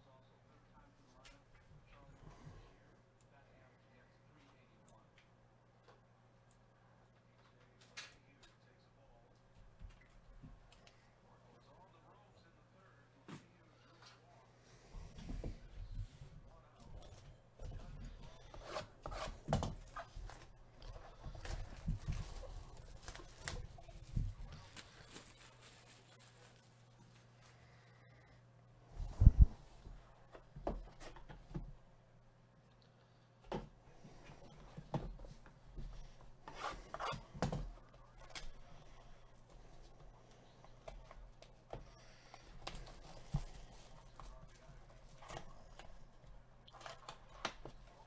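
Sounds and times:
rubbing and rustling: 0:17.7 - 0:27.5
plastic wrap crinkling: 0:24.6 - 0:27.2.

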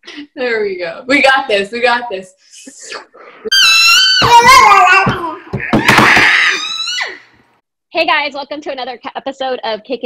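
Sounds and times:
woman shrieking: 0:03.5 - 0:07.4.

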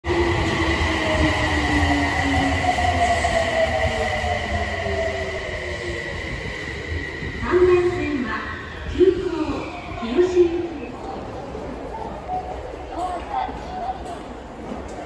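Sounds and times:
subway train rumble: 0:00.0 - 0:15.0.

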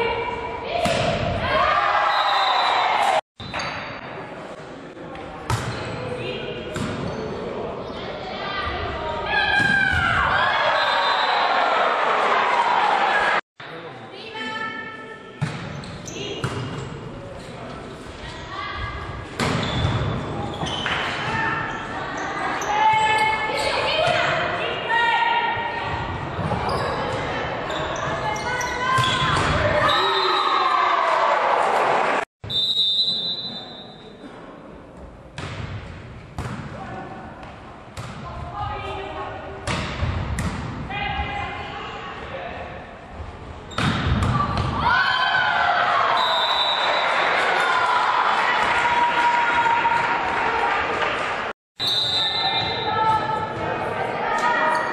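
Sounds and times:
whistle blast: 0:32.4 - 0:34.0, 0:46.1 - 0:47.2, 0:51.8 - 0:52.9
players and spectators shouting: 0:44.4 - 0:51.2.

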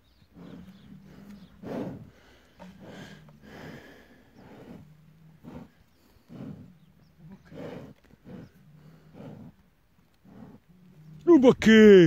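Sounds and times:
bull grunting: 0:00.1 - 0:11.4.

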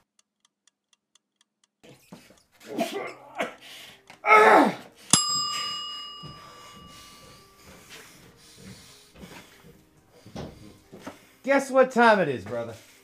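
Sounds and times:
man's strained breathy cry: 0:02.6 - 0:05.0
bright chime ringing: 0:05.1 - 0:07.6.

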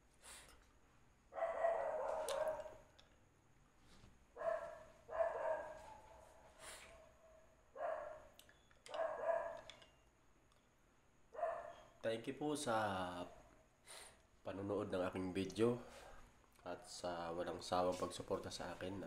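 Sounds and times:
dog barking: 0:01.4 - 0:02.8, 0:04.4 - 0:09.7, 0:11.4 - 0:11.9.

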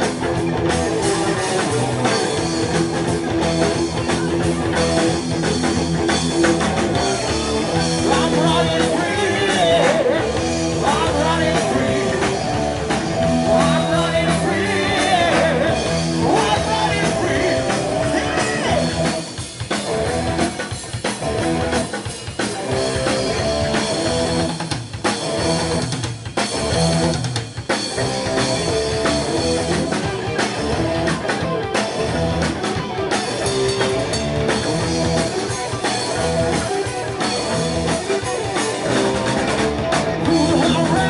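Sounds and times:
bass guitar: 0:00.0 - 0:41.0
distorted electric guitar riffing: 0:00.0 - 0:41.0
heavy metal band playing: 0:00.0 - 0:41.0
rock drum kit: 0:00.0 - 0:41.0.

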